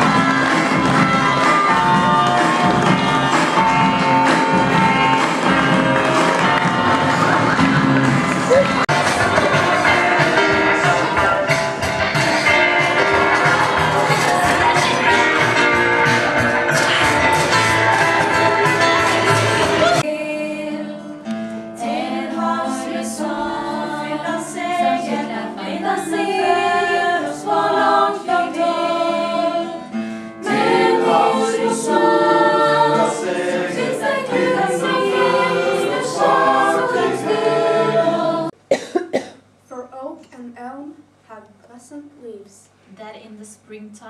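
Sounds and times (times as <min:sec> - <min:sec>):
young women singing together: 0:00.0 - 0:05.5, 0:12.0 - 0:38.6
woman speaking: 0:39.7 - 0:44.0.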